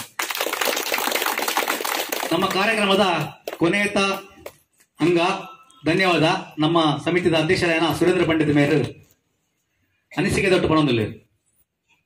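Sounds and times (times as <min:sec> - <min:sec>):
people applauding: 0:00.0 - 0:03.7.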